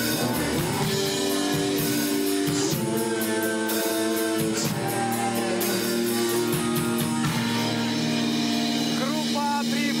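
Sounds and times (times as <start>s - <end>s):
electric guitar chord ringing: 0.0s - 10.0s
man speaking: 8.9s - 10.0s.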